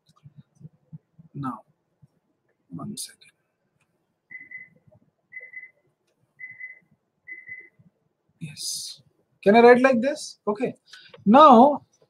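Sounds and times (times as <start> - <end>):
faint electronic beeping: 4.3 - 7.8.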